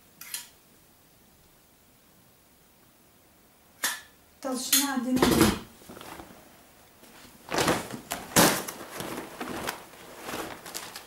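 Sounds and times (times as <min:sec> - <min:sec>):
leather hides rustling: 0:05.8 - 0:06.5, 0:07.1 - 0:11.0.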